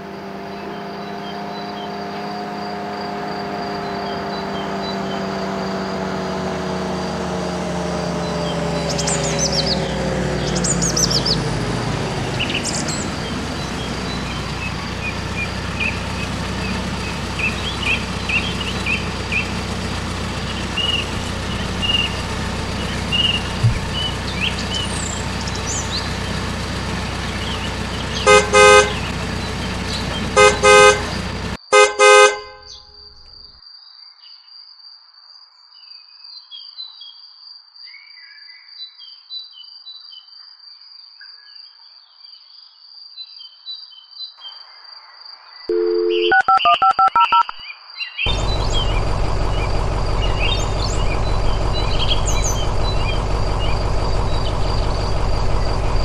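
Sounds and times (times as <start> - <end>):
car engine running: 0.0 - 33.3, 45.7 - 47.6, 48.3 - 56.0
birds chirping: 0.3 - 33.3, 48.3 - 56.0
car horn honks: 28.2 - 29.2, 30.2 - 32.8, 45.7 - 46.6.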